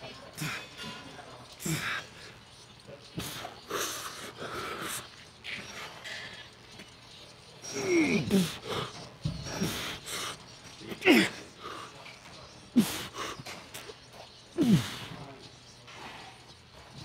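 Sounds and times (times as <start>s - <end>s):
man breathing hard: 7.7s - 11.9s, 12.7s - 13.6s, 14.6s - 15.2s
man grunting: 14.6s - 15.1s.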